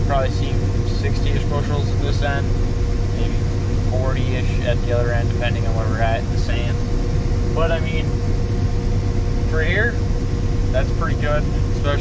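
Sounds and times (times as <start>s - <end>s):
combine harvester engine drone: 0.0s - 12.0s
constant hum: 0.0s - 12.0s.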